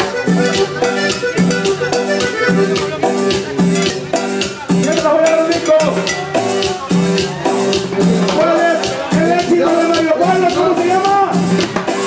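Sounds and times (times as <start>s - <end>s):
live latin dance band: 0.0s - 12.0s
shaker and cymbal beat: 0.0s - 12.0s.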